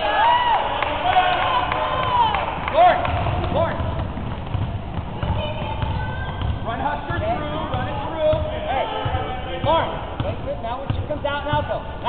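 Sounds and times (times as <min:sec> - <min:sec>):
basketball bouncing on hardwood floor: 0:02.6 - 0:12.0.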